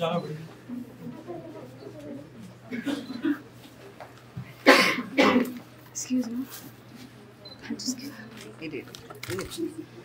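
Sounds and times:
person coughing: 0:02.7 - 0:03.5, 0:04.6 - 0:05.6.

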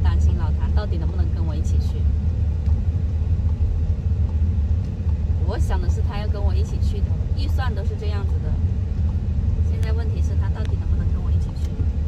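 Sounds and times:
woman talking: 0:00.0 - 0:02.1, 0:05.4 - 0:08.7, 0:09.6 - 0:12.0
car interior rumble: 0:00.0 - 0:12.0.

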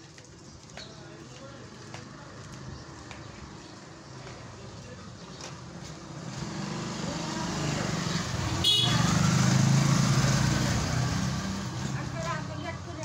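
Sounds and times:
vehicle engine passing by: 0:06.0 - 0:13.0.

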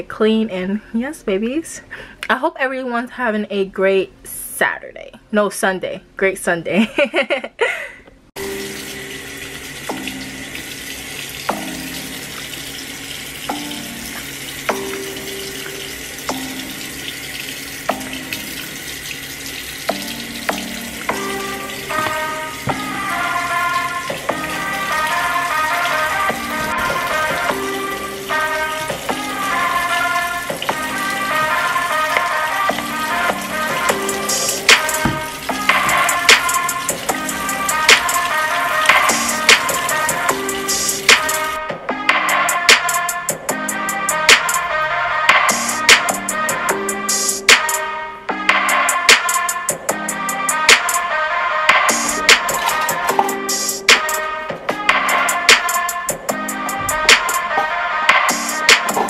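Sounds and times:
tap water running into sink: 0:08.4 - 0:41.6, 0:52.0 - 0:54.2
background music: 0:08.4 - 0:59.0.

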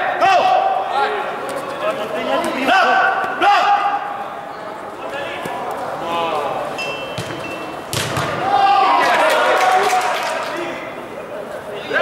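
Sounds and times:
players shouting in a hall: 0:00.0 - 0:01.4, 0:02.5 - 0:04.5, 0:08.3 - 0:11.1
ball being struck: 0:07.2 - 0:08.4.

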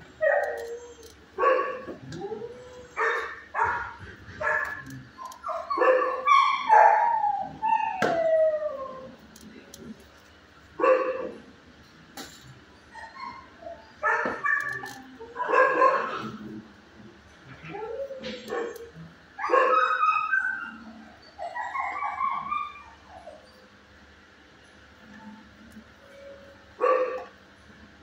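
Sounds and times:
dogs barking: 0:00.2 - 0:08.3, 0:10.8 - 0:11.5, 0:12.9 - 0:16.7, 0:17.5 - 0:23.4, 0:26.8 - 0:27.4.

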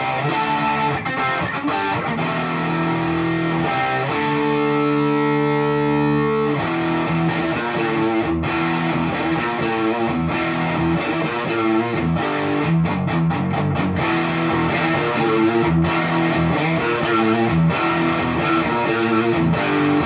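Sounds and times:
electric guitar notes: 0:00.0 - 0:20.0.

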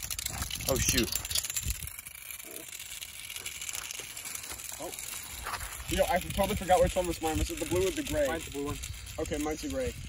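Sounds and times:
spinning tops on pavement: 0:00.0 - 0:10.0.

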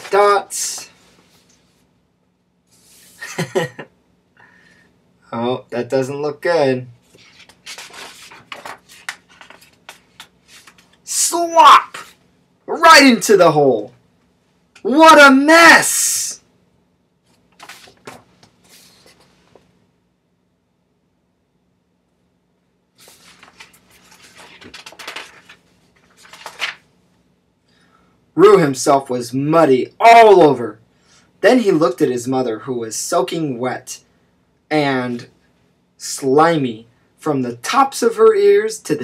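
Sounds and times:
book pages turning: 0:07.1 - 0:11.0, 0:17.3 - 0:19.7, 0:23.0 - 0:26.9.

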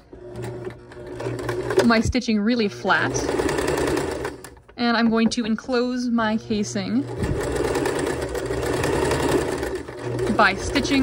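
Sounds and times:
sewing machine stitching: 0:00.0 - 0:11.0.

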